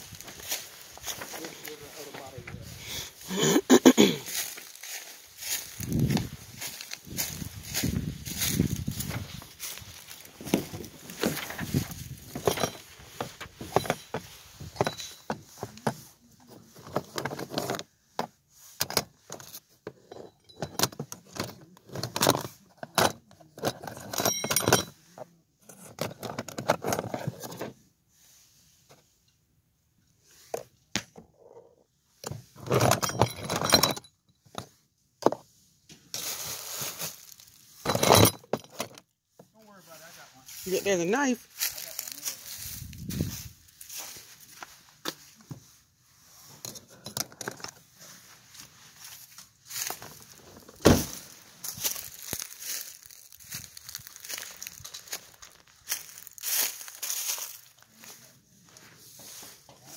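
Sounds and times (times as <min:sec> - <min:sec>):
keys and metal tools clinking: 0:03.3 - 0:17.8, 0:18.8 - 0:25.0, 0:32.7 - 0:34.3, 0:37.0 - 0:39.0, 0:46.5 - 0:47.8, 0:49.8 - 0:55.3.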